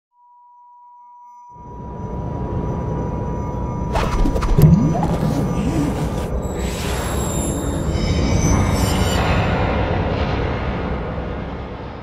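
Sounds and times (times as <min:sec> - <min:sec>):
high electronic tone: 0:04.0 - 0:07.6.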